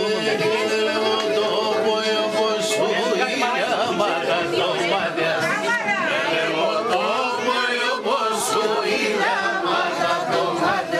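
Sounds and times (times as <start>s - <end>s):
group singing without instruments: 0.0s - 10.9s.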